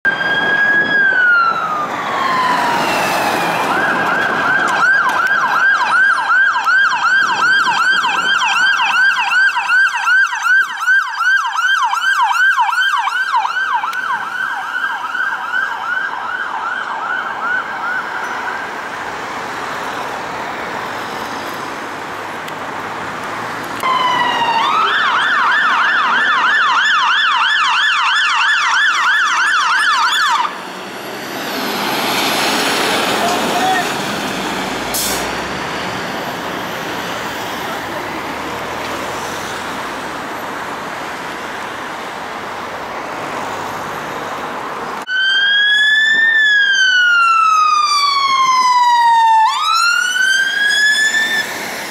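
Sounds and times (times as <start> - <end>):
emergency siren yelping: 0.0 - 21.1, 23.8 - 38.1, 45.0 - 51.9
traffic noise: 0.0 - 51.9.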